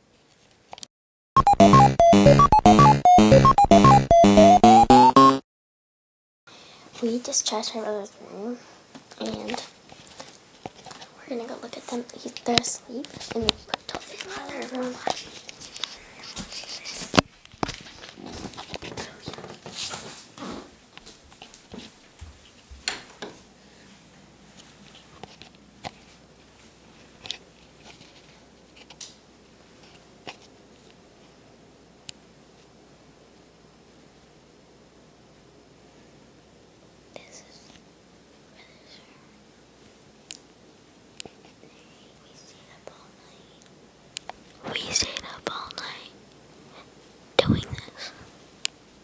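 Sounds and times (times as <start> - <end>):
faint room hiss: 6.5 - 49.0.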